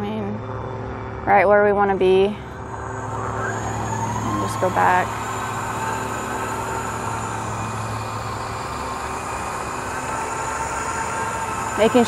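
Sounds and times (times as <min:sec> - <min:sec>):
electric tug mechanical hum: 0:00.0 - 0:12.0.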